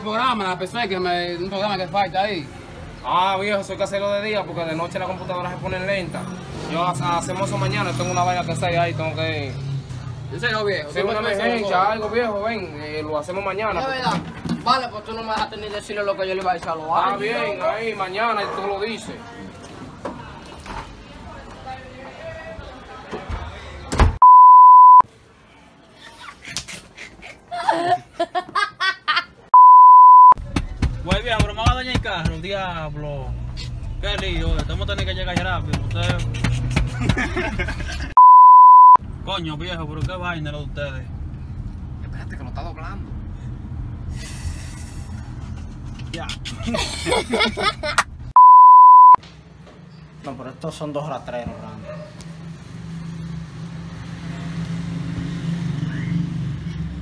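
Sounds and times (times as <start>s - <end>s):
pure beep tone: 24.2s - 25.0s, 29.6s - 30.4s, 38.2s - 39.0s, 48.4s - 49.2s
car road and engine rumble: 29.6s - 57.0s.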